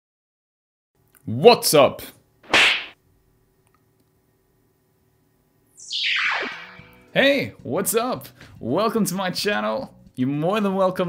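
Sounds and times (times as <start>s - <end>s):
whip-like swish: 2.5s - 3.0s, 5.8s - 6.9s
swoosh falling in pitch: 5.8s - 7.1s.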